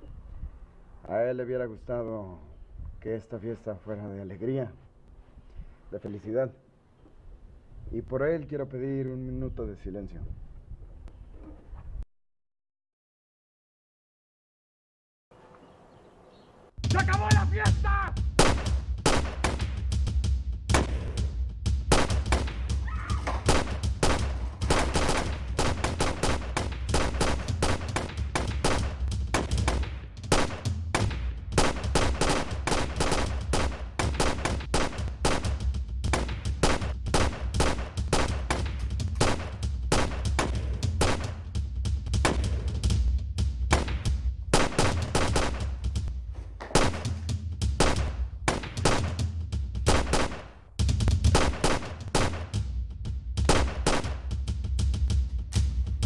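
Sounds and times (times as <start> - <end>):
rapid pistol gunfire: 18.4 - 19.8, 20.7 - 21.2, 21.9 - 41.4, 42.2 - 42.6, 43.7 - 45.8, 46.7 - 49.3, 49.9 - 50.6, 51.2 - 52.6, 53.4 - 54.3.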